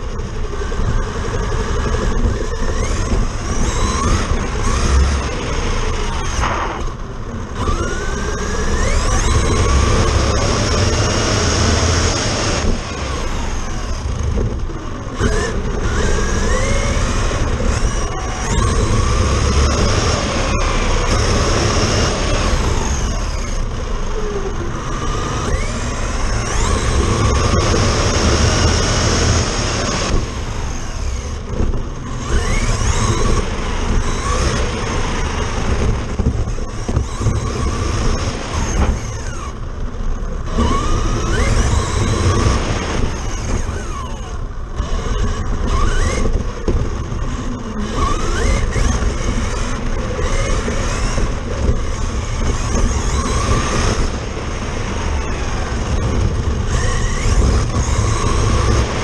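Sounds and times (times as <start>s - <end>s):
electric motor and gears whining: 0.0s - 59.0s
tyre noise on pavement: 0.0s - 59.0s.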